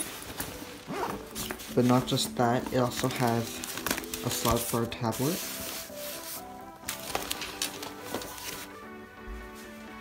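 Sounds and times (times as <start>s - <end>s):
backpack rustling and knocks: 0.0s - 3.0s
background music with held notes: 0.0s - 10.0s.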